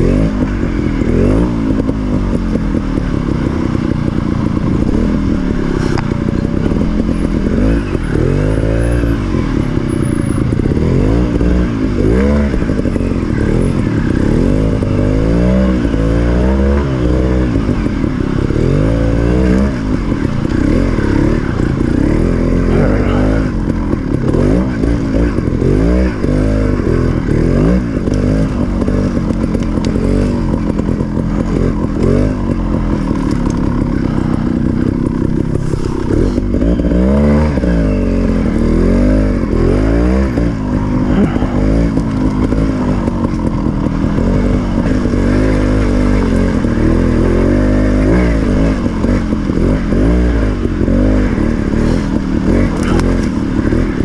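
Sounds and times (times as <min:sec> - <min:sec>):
two-stroke motorbike engine revving: 0:00.0 - 0:54.0.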